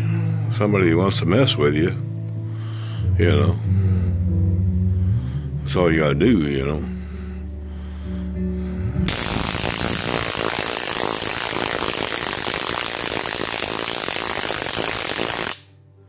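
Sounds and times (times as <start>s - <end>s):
stun gun electric crackle: 9.1s - 15.7s.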